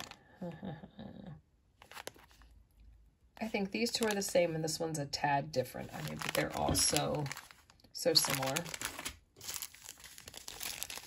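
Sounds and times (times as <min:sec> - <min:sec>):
plastic bags crinkling: 0:01.8 - 0:02.6, 0:03.4 - 0:04.8, 0:05.7 - 0:11.0.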